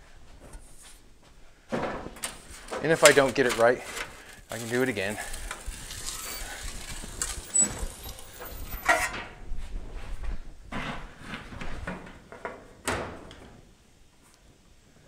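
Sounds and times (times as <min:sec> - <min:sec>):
slip roller rasping rumble: 0:04.4 - 0:09.1.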